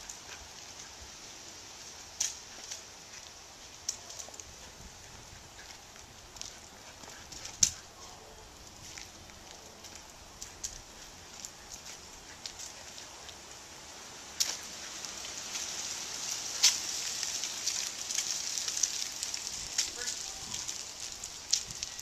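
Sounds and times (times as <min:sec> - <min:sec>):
footsteps crunching through dry leaves: 0:00.0 - 0:22.0
twigs snapping: 0:14.4 - 0:22.0.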